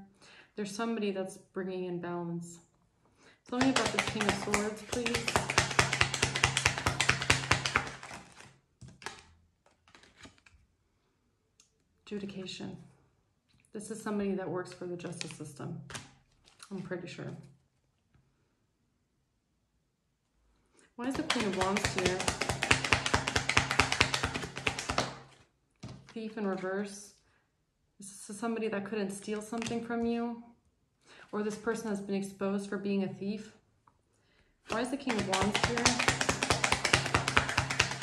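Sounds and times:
cards clicking and tapping: 3.5s - 10.5s, 21.0s - 26.1s, 34.7s - 38.0s.

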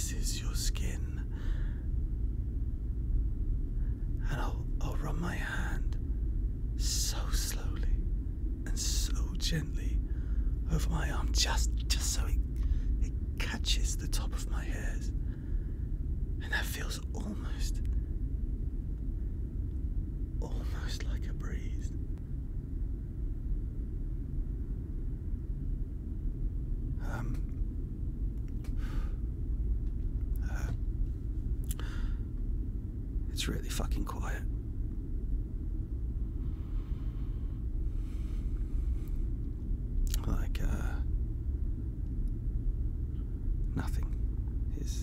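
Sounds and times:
low rumbling drone: 0.0s - 45.0s.

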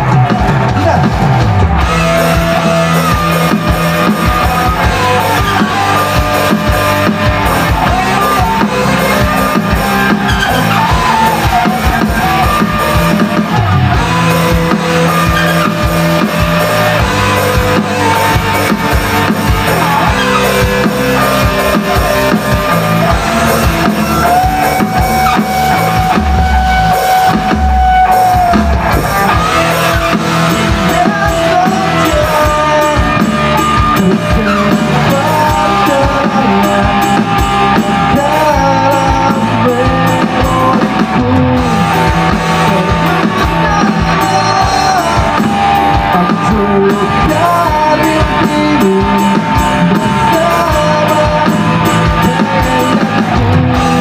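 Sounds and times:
bass guitar: 0.0s - 54.0s
drum kit: 0.0s - 54.0s
electric guitars: 0.0s - 54.0s.

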